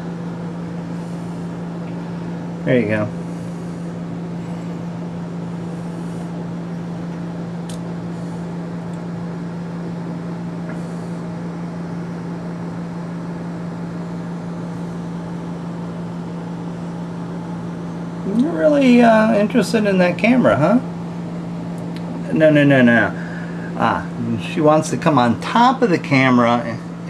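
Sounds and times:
low electrical hum with hiss: 0:00.0 - 0:27.0.

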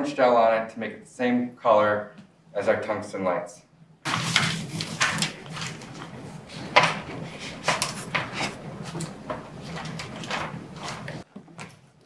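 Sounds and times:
low steady hum: 0:00.0 - 0:12.0
plastic sheet crinkling and rustling: 0:04.1 - 0:11.8.

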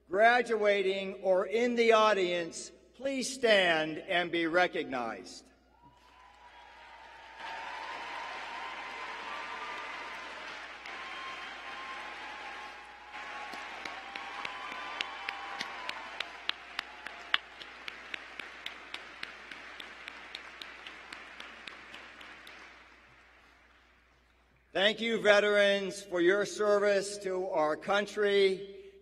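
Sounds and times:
crowd cheering: 0:05.7 - 0:23.6
audience applauding: 0:05.9 - 0:24.0
sharp hand claps nearby: 0:07.4 - 0:23.8.

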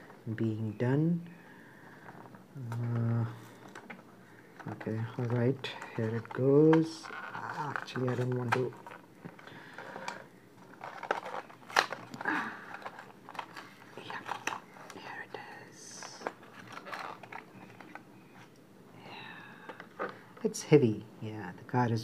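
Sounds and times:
plastic blister crinkling and cracking: 0:01.9 - 0:18.6.

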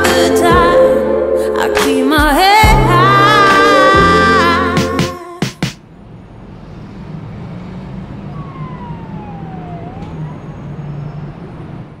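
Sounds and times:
city traffic rumble: 0:05.6 - 0:12.0
distant siren wailing: 0:05.8 - 0:12.0.

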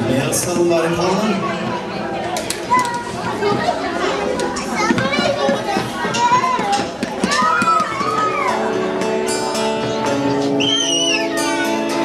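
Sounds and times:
people talking and calling out: 0:00.0 - 0:12.0
children's voices: 0:01.1 - 0:12.0.

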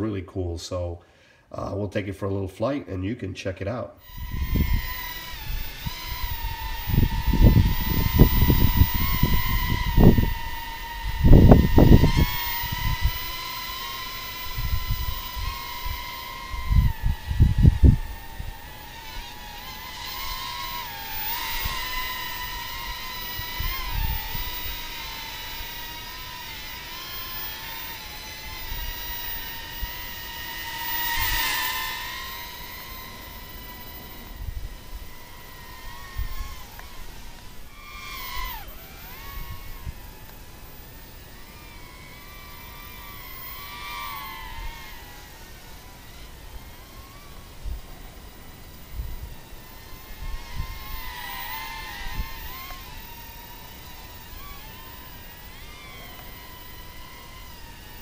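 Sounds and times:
drone motors whining: 0:04.0 - 0:58.0.

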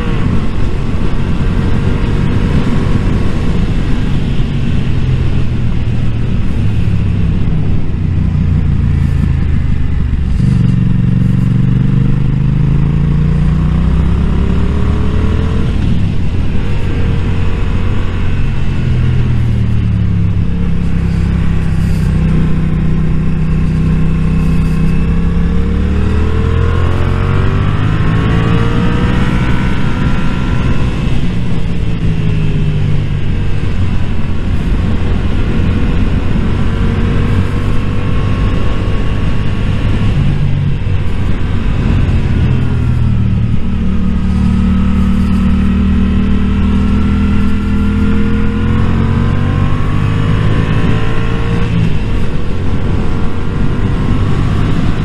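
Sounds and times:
motorcycle engine revving: 0:00.0 - 0:55.0
wind noise on microphone: 0:00.0 - 0:55.0.

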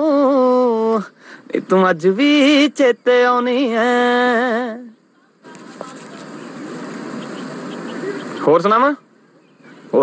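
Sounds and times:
faint high chirps: 0:00.0 - 0:10.0
steady ambient hiss: 0:00.0 - 0:10.0.

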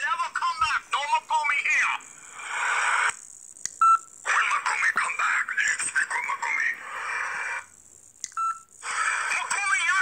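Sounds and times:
man talking on phone: 0:00.0 - 0:02.1, 0:04.2 - 0:07.4, 0:08.8 - 0:10.0
click: 0:08.2 - 0:08.4.

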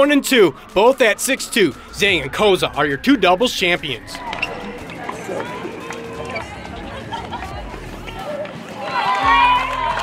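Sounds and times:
indistinct voices: 0:00.0 - 0:10.0
light crowd noise: 0:00.0 - 0:10.0.

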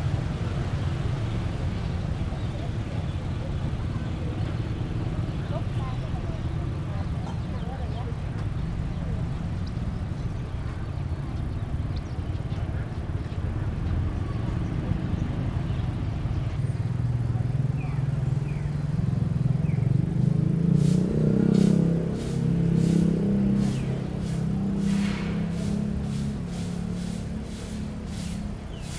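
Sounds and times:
short scraping strokes: 0:20.8 - 0:28.9.

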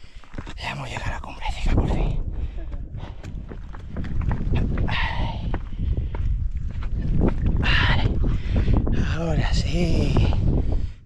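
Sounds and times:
footsteps clicking on rock: 0:00.0 - 0:08.9
wind buffeting microphone: 0:00.0 - 0:11.0
person panting: 0:02.3 - 0:03.6, 0:07.7 - 0:09.1.

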